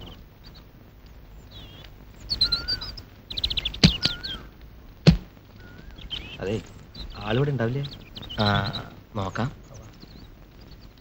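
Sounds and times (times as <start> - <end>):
birds chirping and whistling: 0.0 - 11.0.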